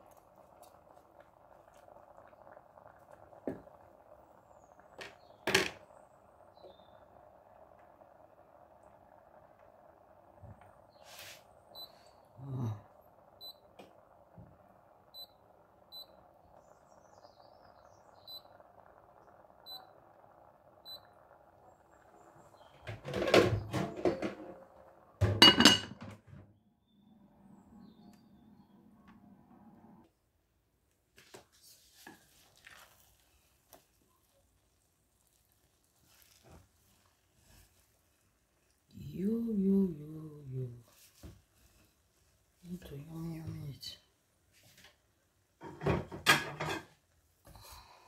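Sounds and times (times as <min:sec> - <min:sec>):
steady faint hiss: 0:00.0 - 0:25.4, 0:27.0 - 0:48.0.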